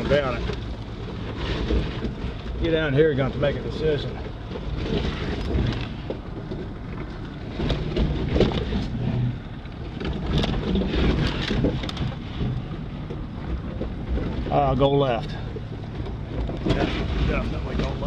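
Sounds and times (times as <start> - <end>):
off-road vehicle engine rumble: 0.0 - 18.0.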